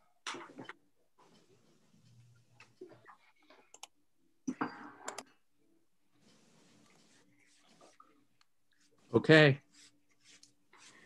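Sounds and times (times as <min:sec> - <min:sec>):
computer clicks: 0:03.7 - 0:03.9.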